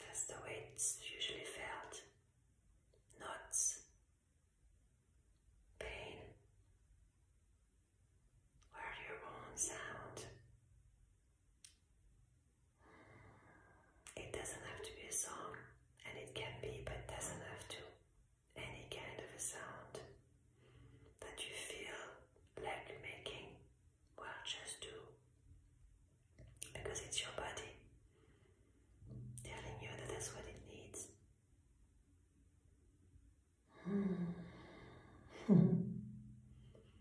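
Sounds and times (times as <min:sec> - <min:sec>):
woman whispering: 0:00.0 - 0:02.1, 0:03.1 - 0:03.9, 0:05.8 - 0:06.4, 0:08.7 - 0:10.4, 0:14.1 - 0:20.1, 0:21.2 - 0:23.6, 0:24.2 - 0:25.1, 0:26.6 - 0:27.8, 0:29.4 - 0:31.2.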